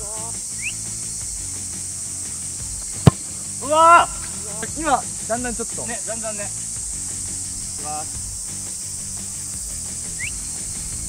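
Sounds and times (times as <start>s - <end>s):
cicadas droning: 0.0s - 11.0s.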